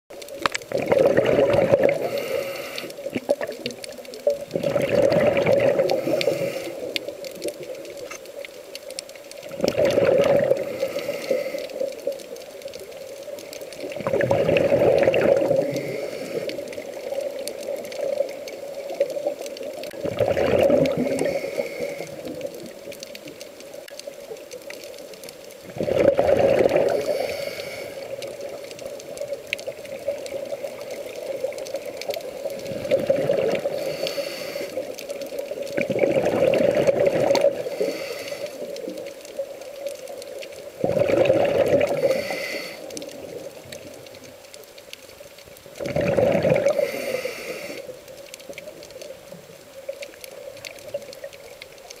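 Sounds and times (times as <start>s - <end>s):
exhaled air bubbles gurgling: 0.1s - 52.0s
regulator inhalation hiss: 2.0s - 3.1s, 5.9s - 7.0s, 10.5s - 12.1s, 15.5s - 17.0s, 21.0s - 22.3s, 26.9s - 28.2s, 33.6s - 35.0s, 37.5s - 38.8s, 41.9s - 43.0s, 46.7s - 48.0s.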